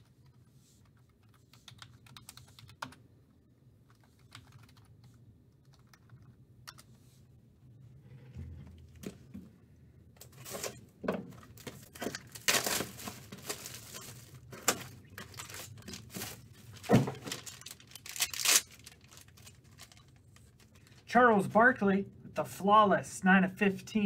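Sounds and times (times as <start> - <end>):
foil card pack rustling: 11.4 - 21.0
plastic wrapping crinkling and tearing: 11.5 - 21.0.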